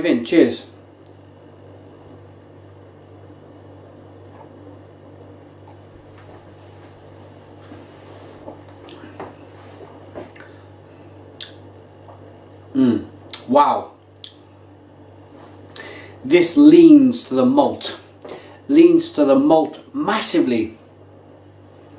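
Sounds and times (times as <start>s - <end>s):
steady low hum: 0.0s - 21.9s
lip smacks and mouth clicks: 10.3s - 10.5s, 11.4s - 11.6s, 13.3s - 14.4s.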